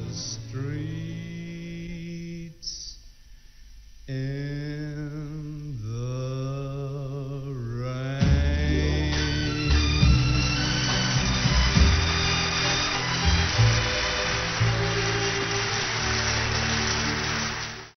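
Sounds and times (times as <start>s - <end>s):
orchestra playing: 8.5s - 17.9s
audience applauding: 9.1s - 18.0s.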